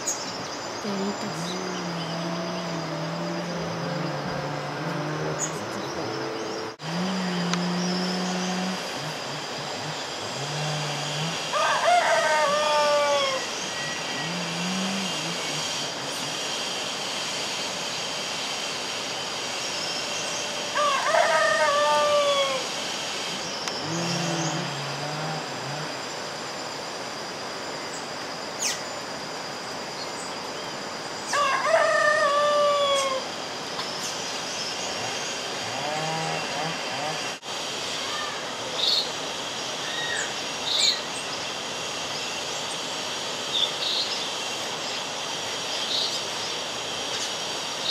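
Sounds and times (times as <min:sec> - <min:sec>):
high-pitched insect drone: 0:00.0 - 0:47.9
rooster crowing: 0:10.6 - 0:15.8, 0:20.6 - 0:22.7, 0:31.3 - 0:33.3.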